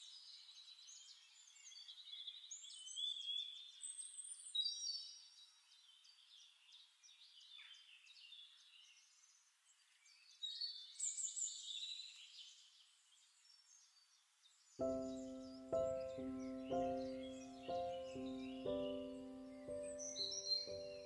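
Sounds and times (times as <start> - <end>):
birds chirping and trilling: 10.0 - 21.0.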